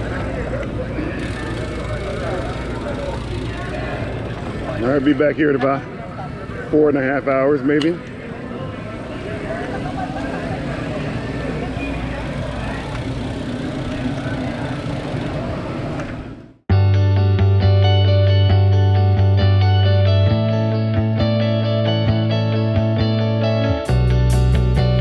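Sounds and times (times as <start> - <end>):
crowd voices outdoors: 0.0 - 16.7
guitar-led background music: 16.7 - 25.0.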